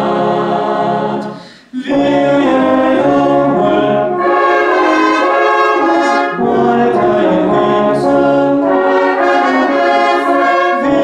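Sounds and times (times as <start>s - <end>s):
brass band holding chord: 0.0s - 11.0s.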